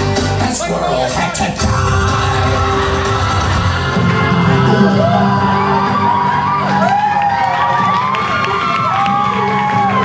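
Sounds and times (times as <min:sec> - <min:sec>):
music playing: 0:00.0 - 0:10.0
audience cheering and whooping: 0:02.3 - 0:10.0.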